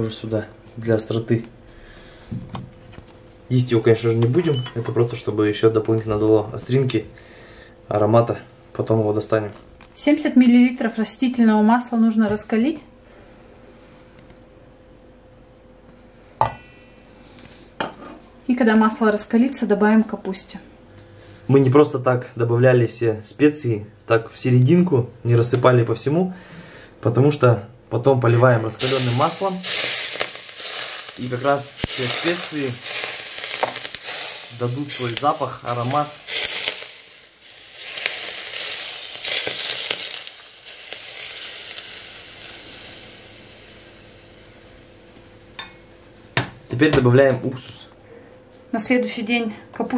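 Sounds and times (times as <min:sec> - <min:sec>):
faint steady hum: 0:00.0 - 0:49.9
saucepan clinking on hob: 0:04.3 - 0:04.9
hot oil sizzling and crackling: 0:28.8 - 0:46.4.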